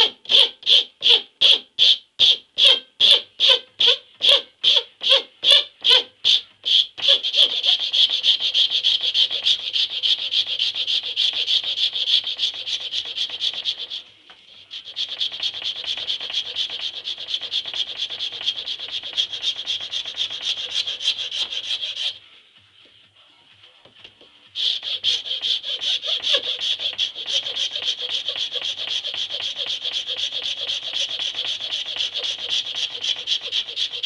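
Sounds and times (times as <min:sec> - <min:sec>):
file rasping on wood: 0:02.6 - 0:14.0, 0:14.6 - 0:22.2, 0:24.5 - 0:34.0.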